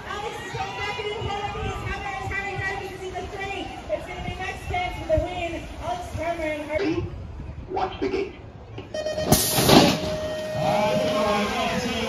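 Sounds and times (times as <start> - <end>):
electronic start tone: 8.9 - 11.8.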